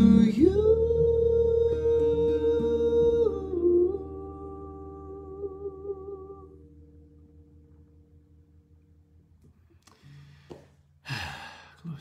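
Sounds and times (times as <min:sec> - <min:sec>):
man sighing: 0:09.9 - 0:12.0.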